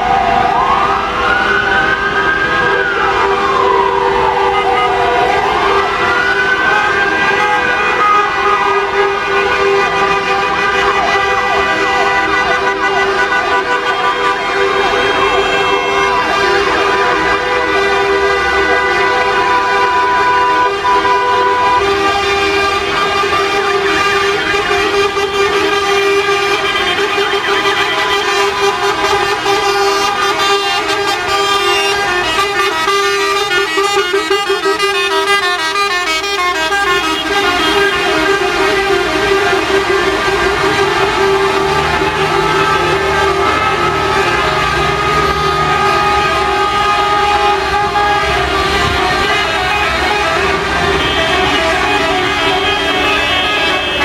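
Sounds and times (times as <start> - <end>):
siren wailing: 0.0 - 54.0
many vehicle horns: 2.0 - 54.0.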